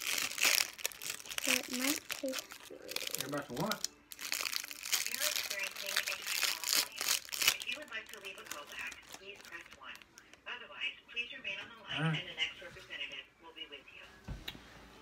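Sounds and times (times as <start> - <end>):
plastic wrapper crinkling: 0.0 - 10.4.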